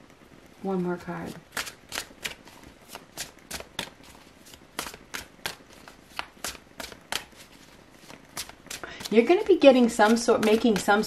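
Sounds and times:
cards being shuffled: 1.2s - 11.0s.

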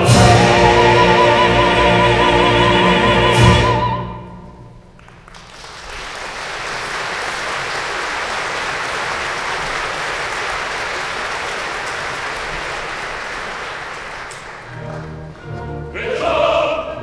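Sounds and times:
audience applauding: 5.0s - 15.7s.

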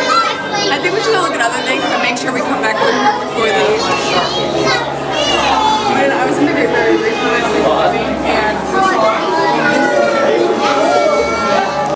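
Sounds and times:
children talking and calling out: 0.0s - 11.9s
crowd chatter: 0.0s - 11.9s.

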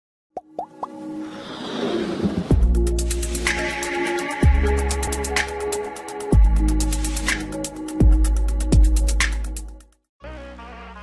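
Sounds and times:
rising-pitch plops: 0.4s - 1.0s
electronic music: 2.5s - 9.8s.

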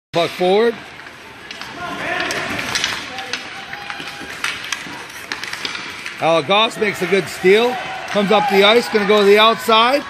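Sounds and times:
hockey sticks clacking: 0.2s - 10.0s
skate blades scraping ice: 1.1s - 6.2s.

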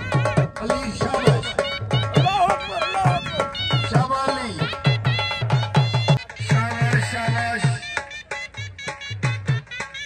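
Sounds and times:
dhol drum beating: 0.0s - 10.0s.

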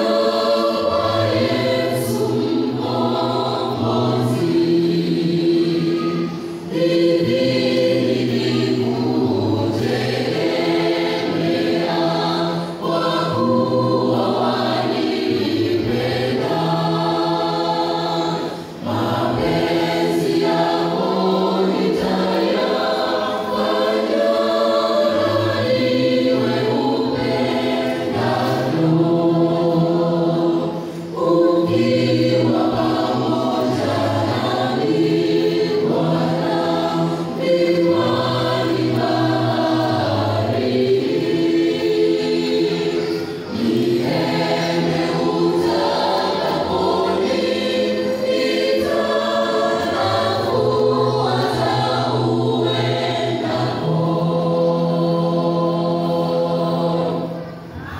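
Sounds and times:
choir singing a hymn: 0.0s - 57.9s.

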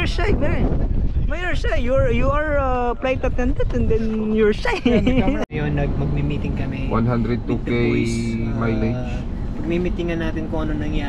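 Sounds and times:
man's voice: 6.9s - 9.2s.

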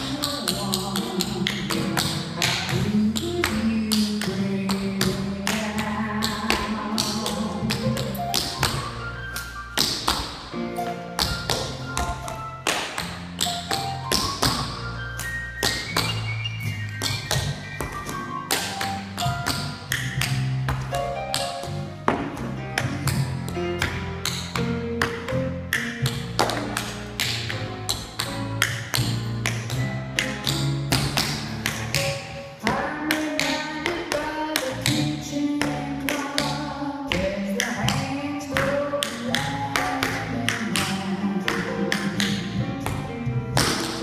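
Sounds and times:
recorded music with bass: 13.0s - 44.0s.

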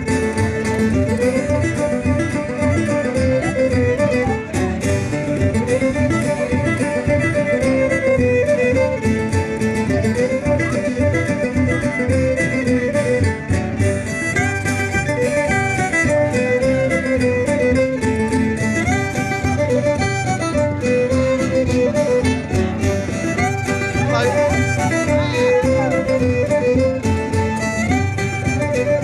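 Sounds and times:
banjo: 0.0s - 29.0s
fiddle melody: 0.0s - 29.0s
strummed acoustic guitar: 0.0s - 29.0s.

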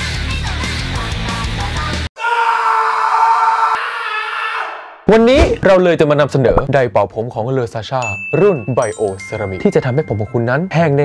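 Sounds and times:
heavy metal music: 0.0s - 2.1s
long high wail: 2.2s - 4.8s.

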